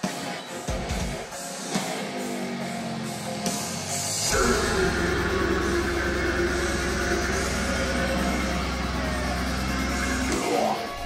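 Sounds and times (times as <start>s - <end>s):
heavy metal band playing: 0.0s - 11.0s
deep sustained bass: 4.2s - 10.4s.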